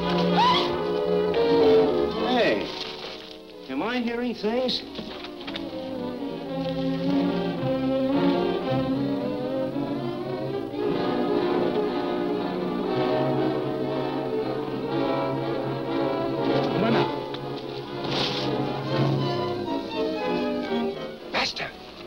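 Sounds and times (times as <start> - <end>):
orchestral brass chords: 0.0 - 3.6, 5.8 - 21.9.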